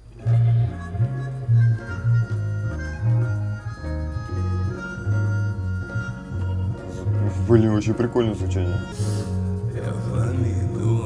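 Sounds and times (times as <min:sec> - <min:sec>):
sustained melody notes: 0:00.0 - 0:11.0
deep bass line: 0:00.2 - 0:11.0.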